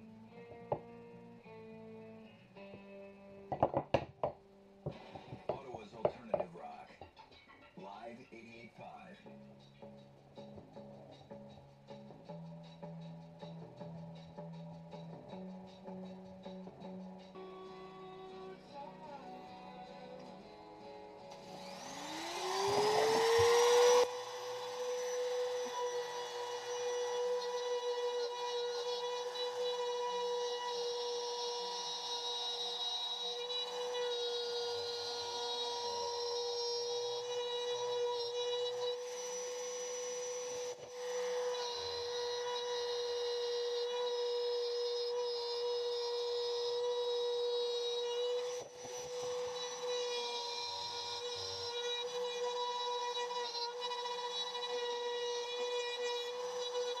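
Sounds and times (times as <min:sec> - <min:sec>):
trim router whining: 0:17.4 - 0:57.0.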